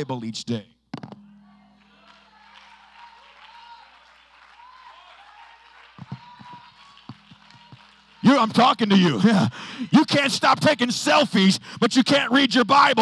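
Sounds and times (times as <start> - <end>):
sharp hand claps: 1.0 - 9.2
light applause: 1.5 - 10.3.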